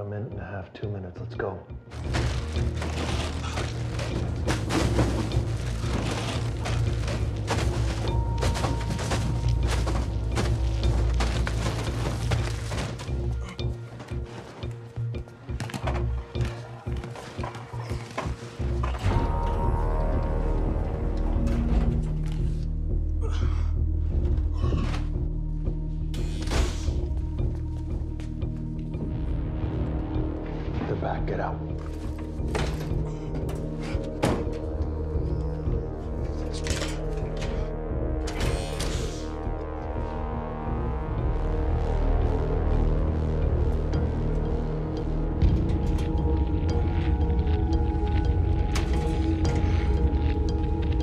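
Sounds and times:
tense film score music: 0:00.0 - 0:51.0.

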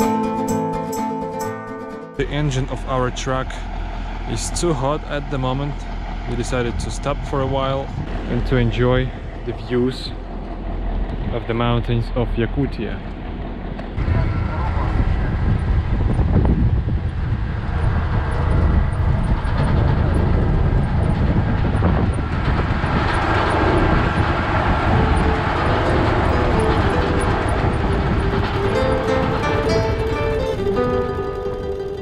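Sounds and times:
truck engine and road rumble: 0:00.0 - 0:32.0.

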